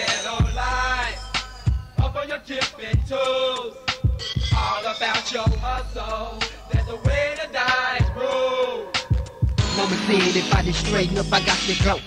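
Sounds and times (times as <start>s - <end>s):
kick drums: 6.7s - 7.3s, 9.1s - 9.7s
pitched wavering vocal: 9.6s - 12.0s.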